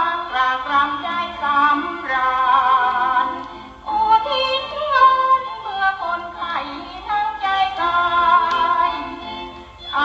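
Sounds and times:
instrumental accompaniment: 0:00.0 - 0:10.0.

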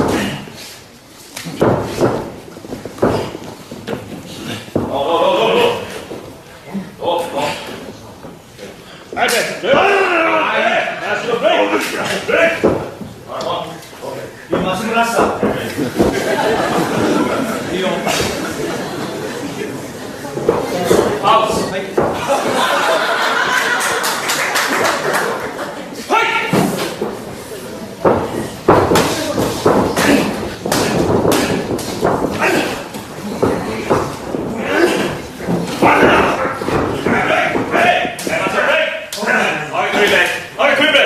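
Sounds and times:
people shouting: 0:09.6 - 0:11.0, 0:26.0 - 0:27.0, 0:29.1 - 0:39.7
sharp impacts in wrestling ring: 0:28.0 - 0:39.1
voices shouting: 0:35.8 - 0:39.7.

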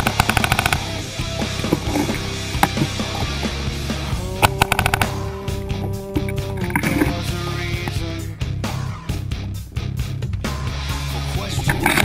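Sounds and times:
paintball marker firing rapidly: 0:00.0 - 0:03.2
rock music: 0:00.0 - 0:12.0.

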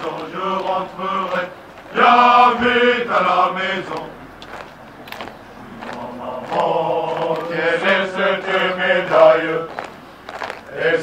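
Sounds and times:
men singing marching song: 0:00.0 - 0:11.0.

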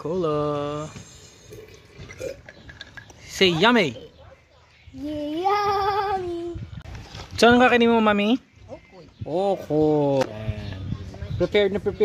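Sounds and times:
child sipping and gulping: 0:01.4 - 0:03.3.

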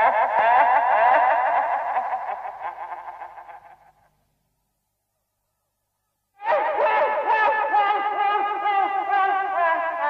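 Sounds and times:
eerie warbling echoing cackle: 0:00.0 - 0:04.1, 0:06.4 - 0:10.0.

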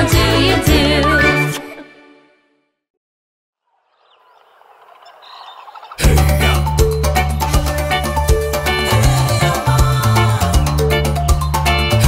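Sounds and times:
birds chirping: 0:03.6 - 0:08.1.

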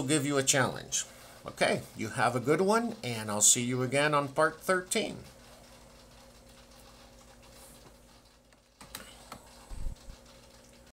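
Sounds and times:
faint electrical hum: 0:00.0 - 0:10.9.

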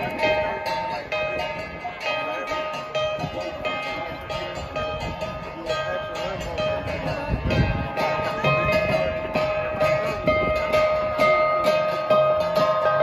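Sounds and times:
gongs struck in rhythm: 0:00.0 - 0:13.0.

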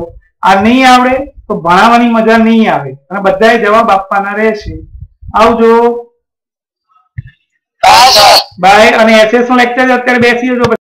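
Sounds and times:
man speaking: 0:07.8 - 0:09.0.

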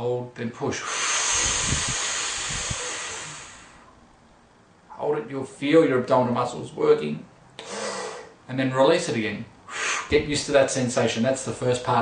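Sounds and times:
man blowing out through lips: 0:00.8 - 0:03.9, 0:07.6 - 0:08.4, 0:09.7 - 0:10.1.

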